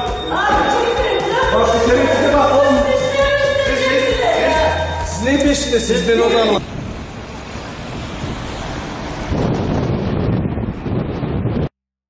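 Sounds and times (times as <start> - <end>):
wind buffeting microphone: 6.6 - 11.7.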